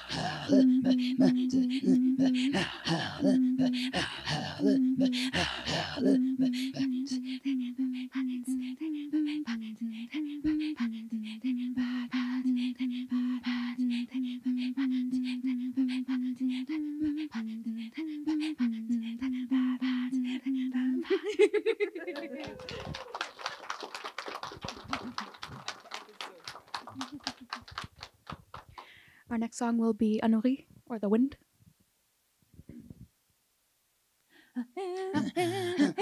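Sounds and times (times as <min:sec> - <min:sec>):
women throat singing: 0:00.0 - 0:23.2, 0:34.6 - 0:36.0
audience applause: 0:22.1 - 0:28.8.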